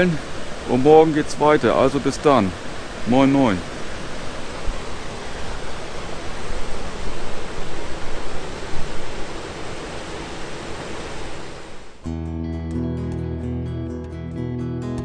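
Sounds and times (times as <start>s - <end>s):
water rushing over weir: 0.0s - 12.0s.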